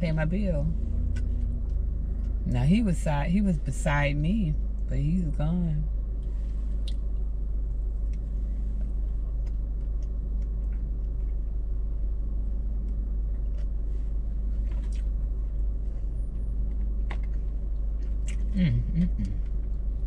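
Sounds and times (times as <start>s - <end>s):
car engine idling: 0.0s - 10.3s
chewing: 1.1s - 2.4s, 8.0s - 11.6s, 12.8s - 20.0s.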